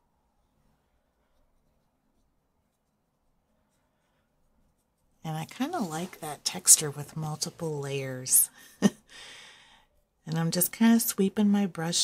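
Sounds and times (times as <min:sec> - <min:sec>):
paintbrush sweeping over paper: 0:00.4 - 0:08.3.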